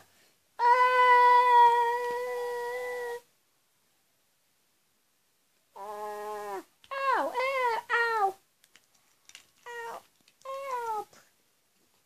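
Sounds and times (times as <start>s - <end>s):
cat meowing: 9.6s - 11.1s.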